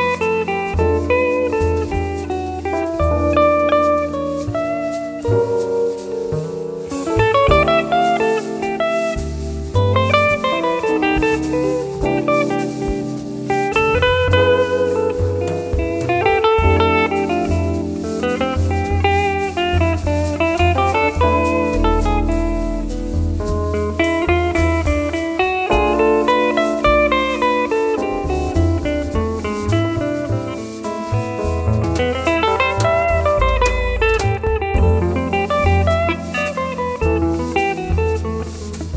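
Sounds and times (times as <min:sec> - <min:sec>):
drums: 0:00.0 - 0:38.9
electric guitar melodic runs: 0:00.0 - 0:38.9
piano: 0:00.0 - 0:38.9
walking double bass: 0:00.0 - 0:38.9.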